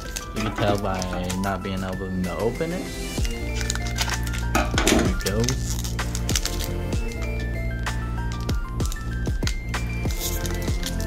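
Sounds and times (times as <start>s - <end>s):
foil wrapper crinkling and tearing: 0.0s - 2.0s, 3.2s - 11.0s
background music: 0.0s - 11.0s.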